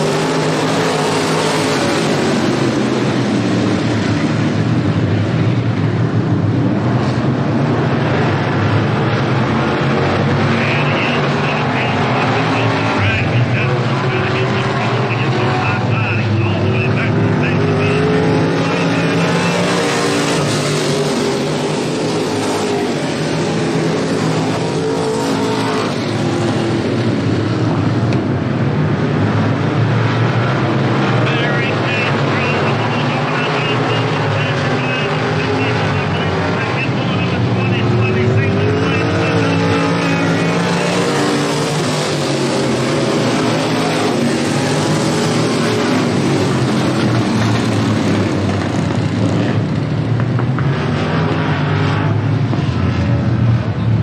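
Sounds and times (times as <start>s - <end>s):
race car engines passing: 0.0s - 54.0s.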